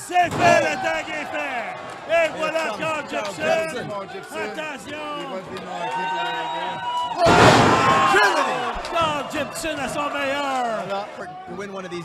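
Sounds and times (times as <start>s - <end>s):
voices shouting: 0.0s - 12.0s
wrestlers crashing onto canvas: 7.2s - 9.8s.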